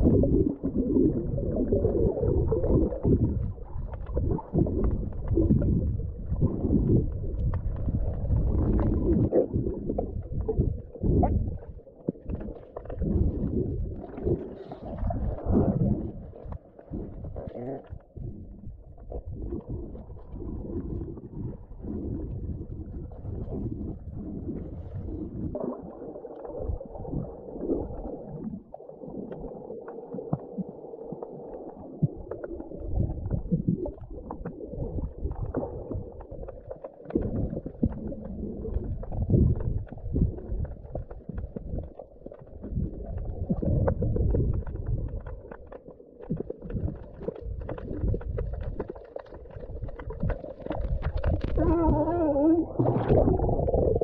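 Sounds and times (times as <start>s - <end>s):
muffled underwater rumble: 0.0s - 54.0s
small clicks and crackles: 27.6s - 54.0s.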